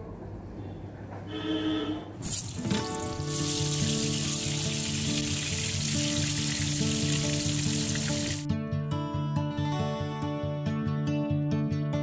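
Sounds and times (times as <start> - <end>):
oil sizzling in a wok: 2.2 - 8.5.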